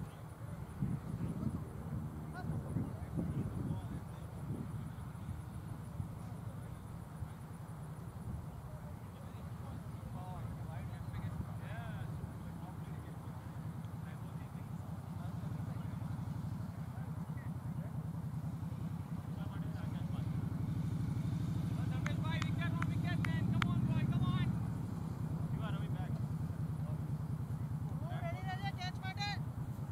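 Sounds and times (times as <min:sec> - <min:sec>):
distant voices calling out: 0:00.0 - 0:29.9.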